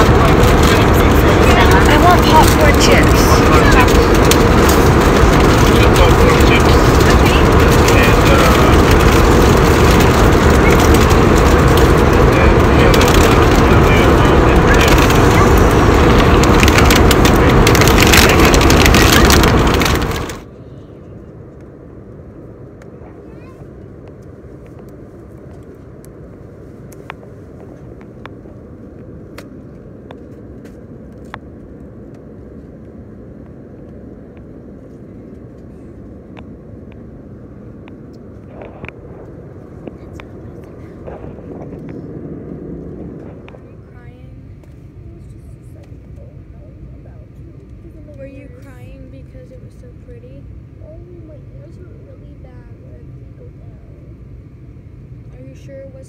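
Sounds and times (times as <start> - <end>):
loud rushing noise: 0.0 - 20.5
airliner cabin drone: 0.0 - 56.0.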